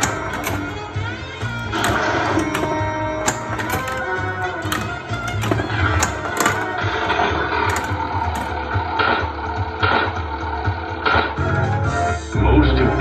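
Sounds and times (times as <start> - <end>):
pinball flipper and ball clacks: 0.0 - 10.1.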